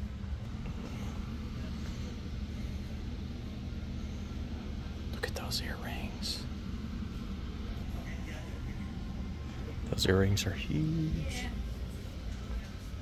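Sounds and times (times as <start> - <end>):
low hum of room tone: 0.0 - 13.0.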